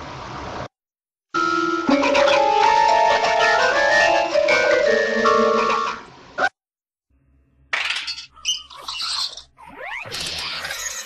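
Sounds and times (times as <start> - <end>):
squeaky chirp sound effects: 8.3 - 11.0.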